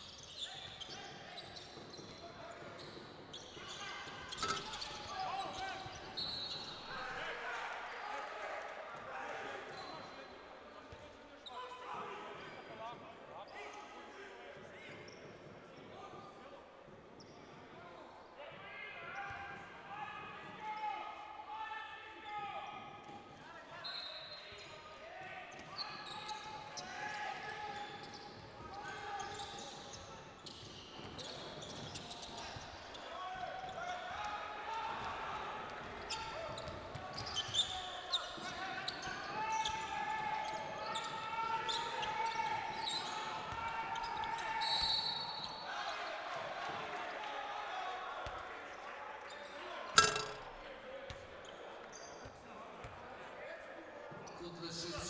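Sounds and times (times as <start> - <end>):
voices in sports hall: 0.0 - 55.0
referee's whistle: 23.8 - 24.4, 44.0 - 45.6.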